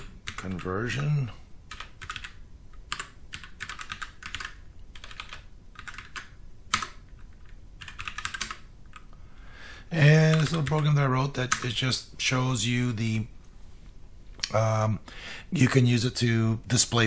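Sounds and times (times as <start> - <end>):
computer keyboard typing: 0.0 - 1.1, 1.7 - 9.1, 10.0 - 11.8.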